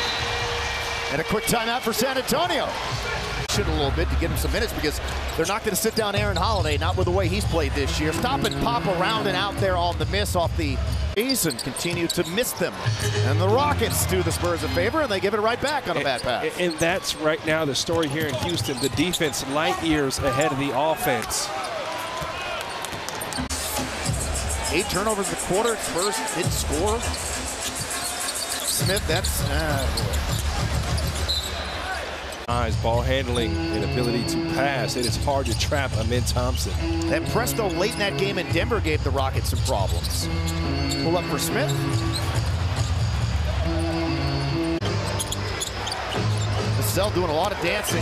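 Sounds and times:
arena crowd noise: 0.0 - 48.0
court noise: 0.0 - 48.0.

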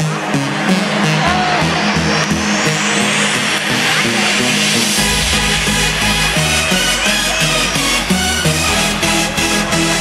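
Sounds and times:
repeating synth bass line: 0.0 - 10.0
rising noise sweep: 0.9 - 8.2.

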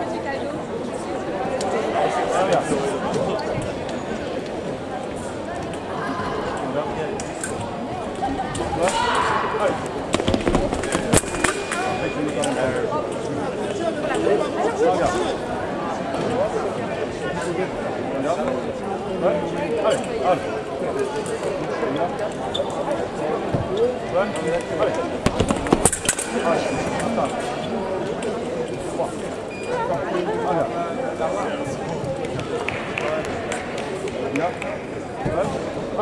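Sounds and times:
background chatter in hall: 0.0 - 36.0.

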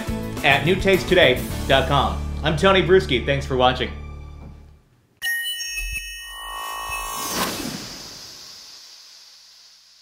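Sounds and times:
shimmering synthesizer chimes: 5.2 - 9.2.

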